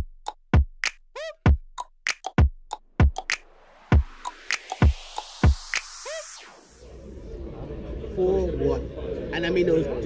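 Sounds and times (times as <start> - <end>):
electronic music: 0.8 - 7.0
rising and falling pitched tone: 3.0 - 7.4.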